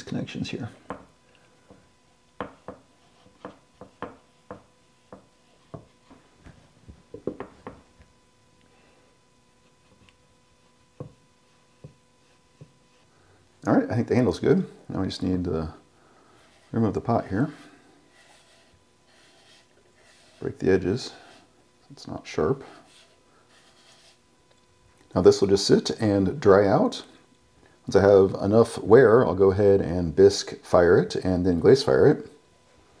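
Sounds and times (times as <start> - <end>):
faint steady hum: 0.0 - 33.0
sponge tapping clay: 2.4 - 6.0
damp sponge rubbing on clay: 16.4 - 21.5, 22.6 - 24.2.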